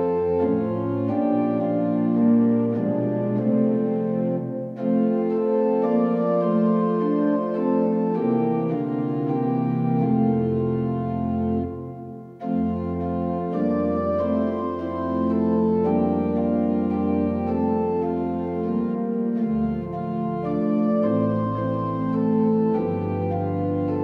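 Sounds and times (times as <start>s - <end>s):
organ playing slow chords: 0.0s - 24.0s.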